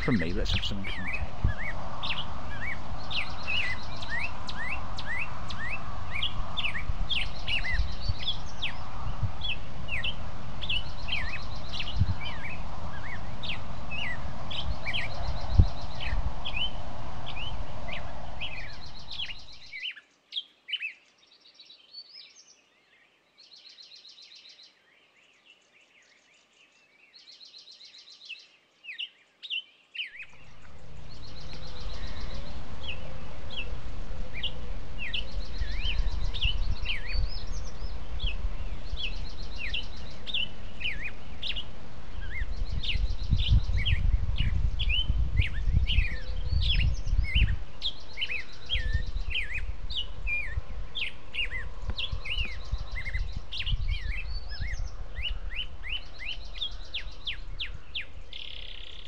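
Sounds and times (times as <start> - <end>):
steady low rumble: 0.0 - 4.2, 30.3 - 47.7
songbirds chirping and trilling: 0.0 - 59.0.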